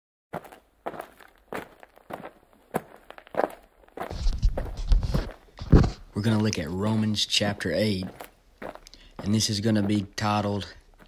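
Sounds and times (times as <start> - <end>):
slow footsteps: 0.3 - 11.0.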